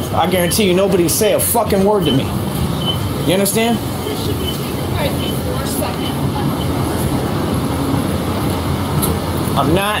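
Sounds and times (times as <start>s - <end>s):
vehicle traffic rumble: 0.0s - 10.0s.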